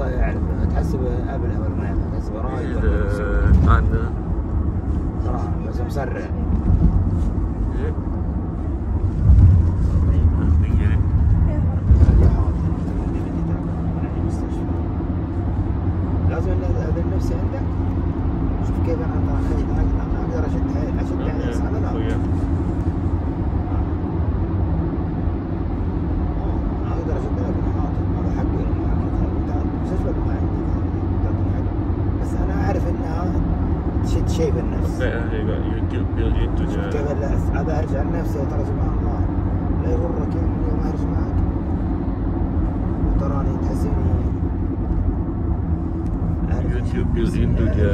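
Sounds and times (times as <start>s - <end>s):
car cabin road rumble: 0.0s - 47.9s.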